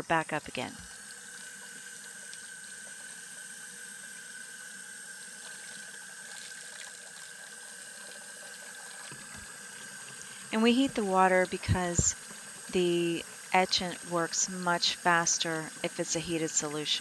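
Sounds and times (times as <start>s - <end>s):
tap water running into a pot: 0.8s - 17.0s.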